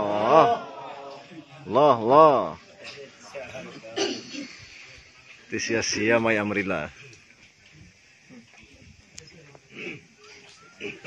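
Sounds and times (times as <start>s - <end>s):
faint low voices: 0.0s - 5.6s, 6.9s - 11.0s
small crowd noises: 0.0s - 11.0s.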